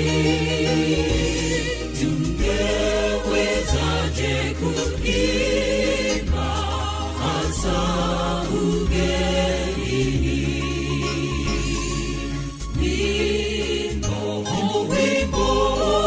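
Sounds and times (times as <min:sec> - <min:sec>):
choir singing gospel song: 0:00.0 - 0:16.0
low bass notes: 0:00.0 - 0:16.0.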